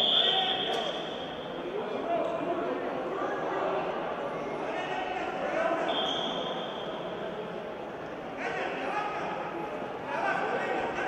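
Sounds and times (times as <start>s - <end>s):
voices echoing in a hall: 0.0s - 11.0s.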